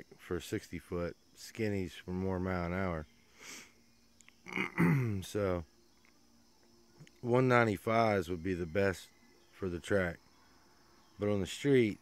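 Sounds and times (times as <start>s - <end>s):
man sniffing: 3.4s - 3.8s
man clearing throat: 4.5s - 5.2s.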